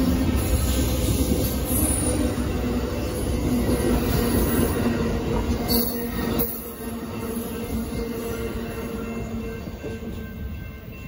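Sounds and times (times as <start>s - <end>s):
train wheels rumbling on rail: 0.0s - 11.0s.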